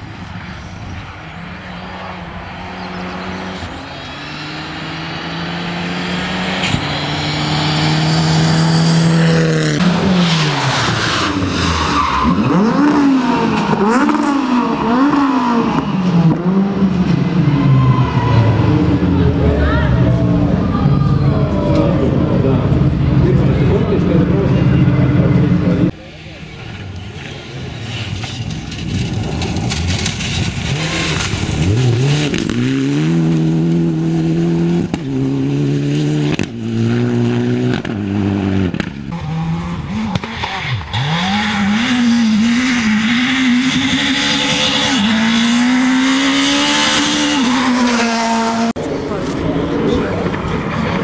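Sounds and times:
car engine accelerating hard: 0.6 - 26.0, 26.7 - 51.0.

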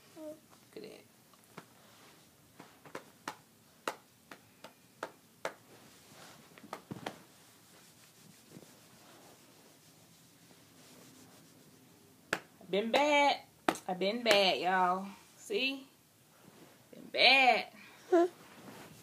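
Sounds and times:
handling noise on microphone: 5.6 - 9.8, 18.4 - 19.0.

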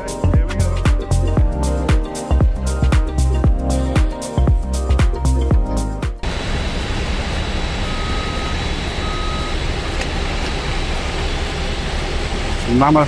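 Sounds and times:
faint high whine: 6.2 - 13.0
vehicle engine rumble: 6.2 - 13.0
short electronic beeps: 7.8 - 9.6.

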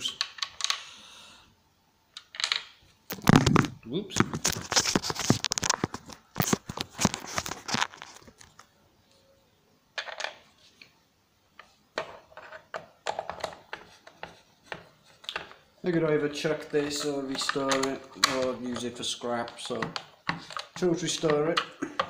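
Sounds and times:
handling clatter and scraping: 3.1 - 8.6, 16.5 - 21.6
clicks and scrapes: 3.1 - 8.7, 16.5 - 22.0.

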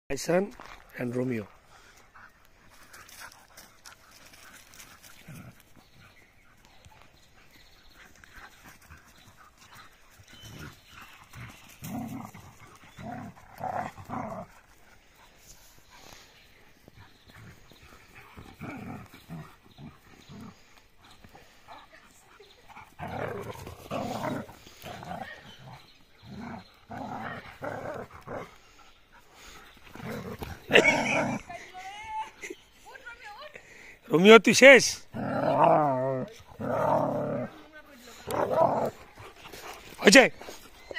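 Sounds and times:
dogs play-fighting vocalising: 1.5 - 31.7, 35.1 - 40.9.

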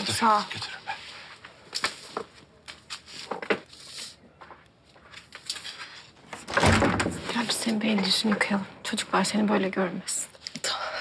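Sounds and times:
door closing: 6.4 - 7.5.

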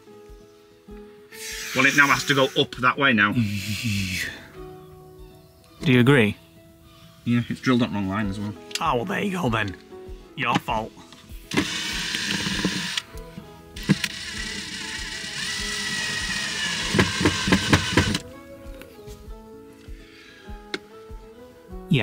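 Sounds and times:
background music: 0.0 - 22.0
cordless drill whining: 11.4 - 18.3
drill clicks: 11.5 - 13.2, 13.8 - 18.2.

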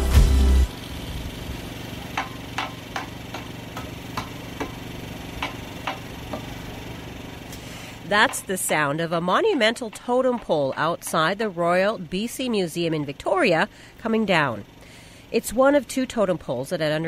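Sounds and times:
machinery humming: 0.0 - 17.0
sharp knocks and taps: 2.2 - 4.8, 5.4 - 6.5, 8.1 - 8.9, 9.5 - 11.3.

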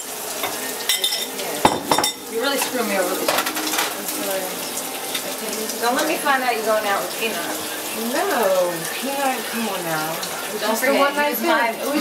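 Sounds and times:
food sizzling in a frying pan: 0.0 - 12.0
utensil clinking against pan: 0.4 - 4.1.

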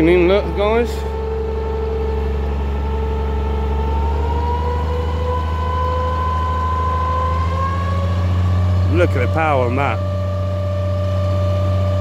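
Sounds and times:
engine running and speeding up: 0.0 - 12.0.

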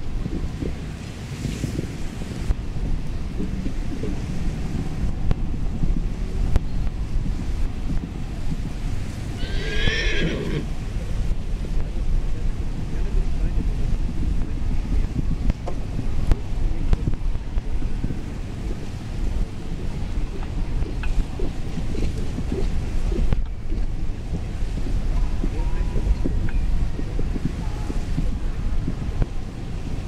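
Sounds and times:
wind noise on microphone: 0.0 - 30.0
horse whinnying: 9.4 - 10.7.

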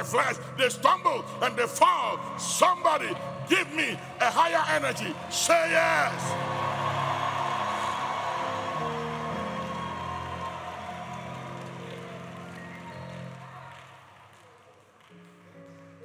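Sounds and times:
congregation cheering and shouting: 0.0 - 14.2.

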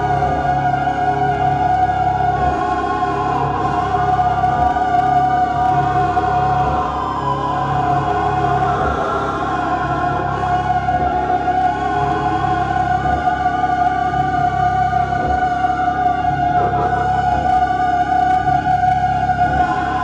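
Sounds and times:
low throbbing drone: 0.0 - 20.0.

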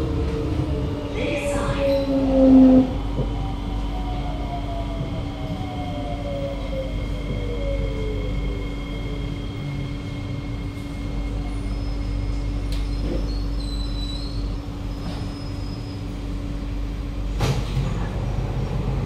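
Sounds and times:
train door clunk: 17.3 - 18.2.

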